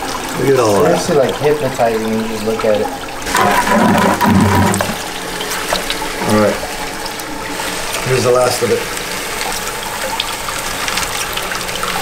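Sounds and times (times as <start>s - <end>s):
water draining into tub: 0.0s - 12.0s
water running and splashing: 0.0s - 12.0s.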